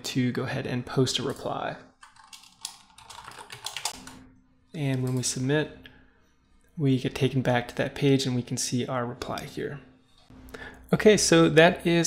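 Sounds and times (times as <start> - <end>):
typing on computer keyboard: 2.0 - 4.2.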